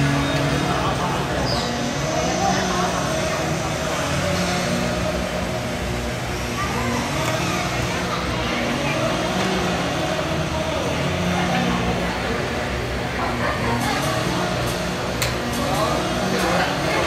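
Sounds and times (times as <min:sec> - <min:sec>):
indistinct chatter and calls: 0:00.0 - 0:17.0
steady mechanical hum: 0:00.0 - 0:17.0.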